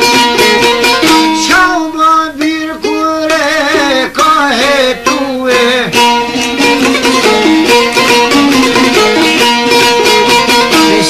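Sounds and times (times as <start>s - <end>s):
man singing folk song: 0.0s - 11.0s
plucked long-necked lute: 0.0s - 11.0s.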